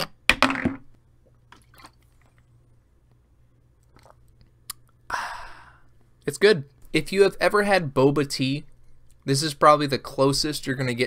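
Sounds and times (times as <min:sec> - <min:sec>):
person gulping: 0:03.8 - 0:05.0.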